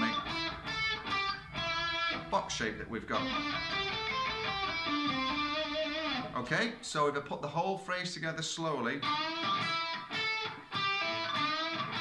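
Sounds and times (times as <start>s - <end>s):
electric guitar single notes: 0.0s - 2.4s, 3.0s - 6.4s, 9.0s - 12.0s.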